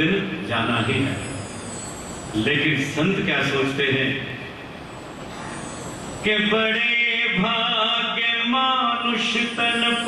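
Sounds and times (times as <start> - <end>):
man's amplified voice: 0.0 - 1.4, 2.3 - 4.5, 6.2 - 10.0
steady background noise: 0.0 - 10.0.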